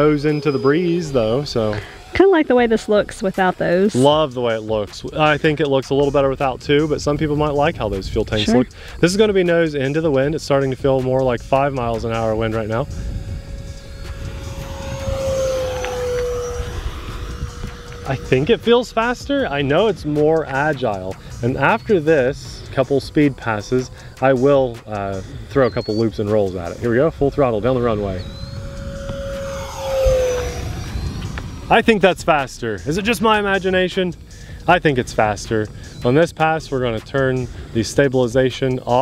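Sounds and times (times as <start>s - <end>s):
electric ducted-fan jet whine: 0.0s - 39.0s
wind rumble on microphone: 4.8s - 23.6s, 24.6s - 38.1s.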